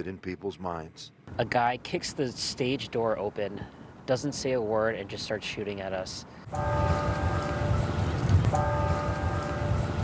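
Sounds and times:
steady low rumble: 6.4s - 10.0s
bell tolling: 6.5s - 10.0s.

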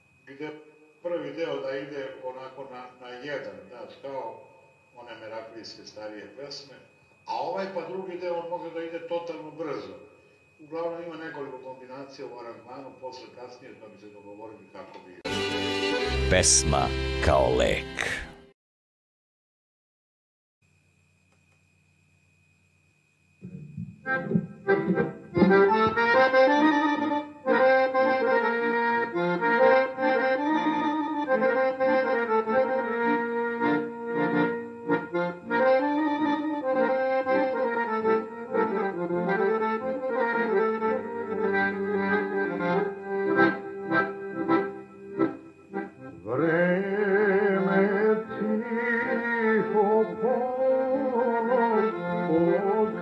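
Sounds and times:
accordion folk music: 15.2s - 18.4s, 24.1s - 53.0s.

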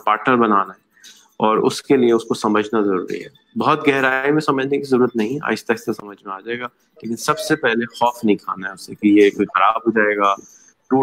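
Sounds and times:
person speaking over a video call: 0.0s - 11.0s
faint high tone: 6.0s - 11.0s.

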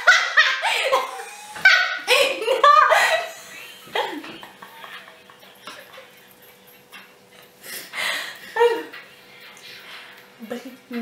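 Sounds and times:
women laughing: 0.0s - 6.6s, 7.7s - 9.0s.

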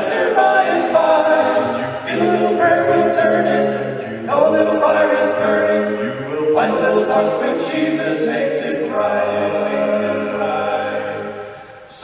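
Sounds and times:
male vocal quartet singing hymn: 0.0s - 12.0s.

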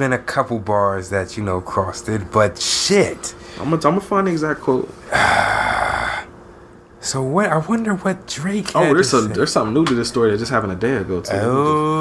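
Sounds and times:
man sighing: 5.1s - 6.3s.

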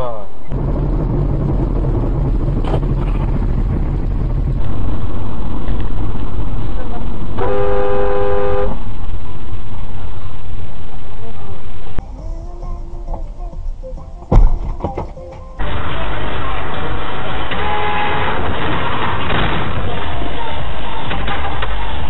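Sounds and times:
road and engine rumble: 0.0s - 22.0s
car horn blare: 7.4s - 8.9s, 15.7s - 18.6s.

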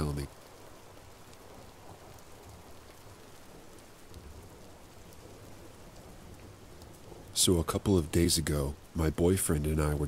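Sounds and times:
steady rain falling: 0.0s - 10.0s.

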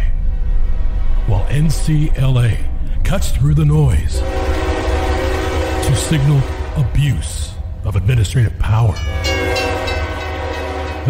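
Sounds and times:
horn-like chord: 4.2s - 7.7s, 9.0s - 11.0s.

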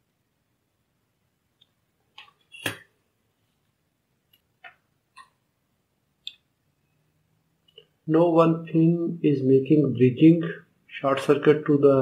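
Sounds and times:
faint clicks and taps: 3.5s - 5.4s.

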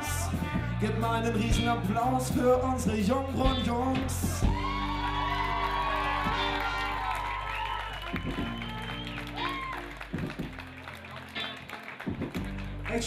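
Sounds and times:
band bass and drums: 0.0s - 13.0s.

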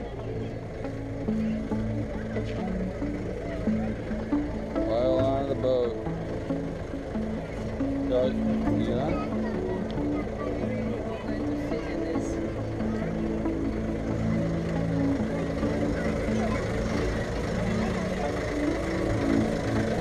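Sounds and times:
ferry engine rumbling: 0.0s - 20.0s
held musical notes: 0.0s - 20.0s
passengers talking: 0.0s - 20.0s.

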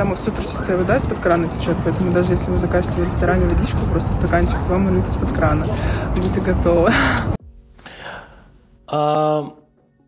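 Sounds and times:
woman's voice: 0.0s - 7.4s
man speaking: 8.9s - 9.6s.

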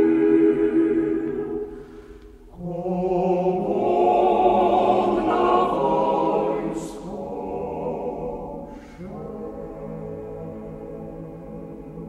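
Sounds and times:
male choir singing a cappella: 0.0s - 1.8s, 2.5s - 12.0s.

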